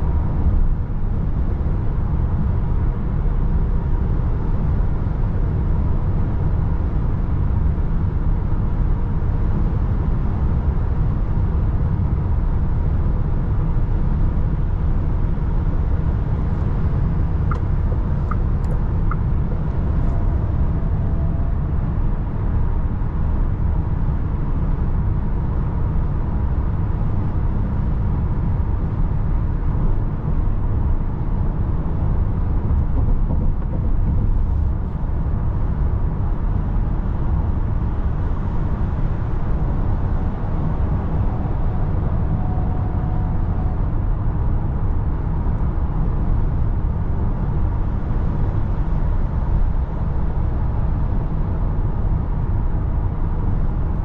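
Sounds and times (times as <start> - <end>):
road and wind noise in vehicle: 0.0 - 54.0.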